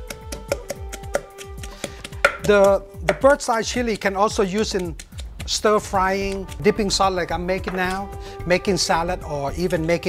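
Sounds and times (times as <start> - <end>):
pestle pounding in stone mortar: 0.0 - 5.9
background music: 0.0 - 10.0.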